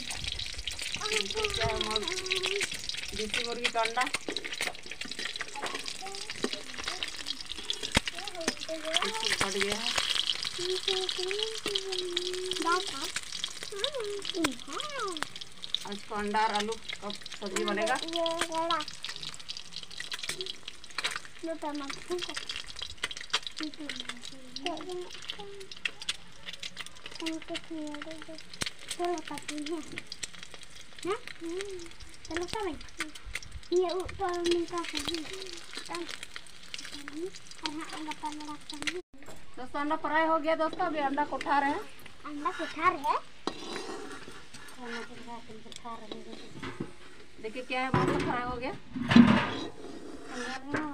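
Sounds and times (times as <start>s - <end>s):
eggs sizzling in hot oil: 0.0s - 50.9s
metal spatula scraping pan: 42.3s - 50.9s.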